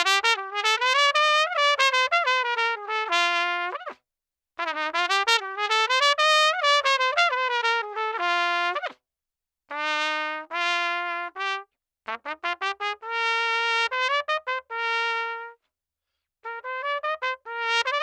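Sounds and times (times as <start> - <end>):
solo trumpet playing: 0.0 - 4.0, 4.6 - 9.0, 9.7 - 15.6, 16.4 - 18.0.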